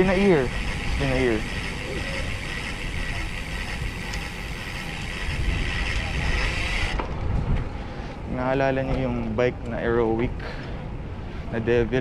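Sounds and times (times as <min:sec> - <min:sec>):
wind rumble on microphone: 0:00.0 - 0:09.9
road noise: 0:00.0 - 0:12.0.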